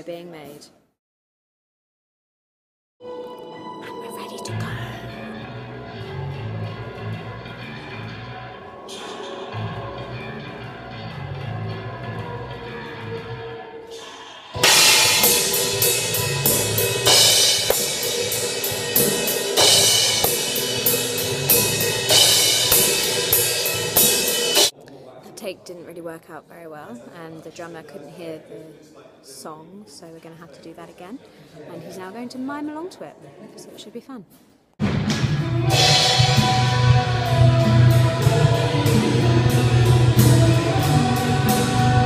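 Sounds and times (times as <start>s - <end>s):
cymbal crashes: 13.9s - 24.7s, 34.8s - 42.0s
band music: 14.6s - 24.7s, 34.8s - 42.0s
drum hits: 14.6s - 24.7s.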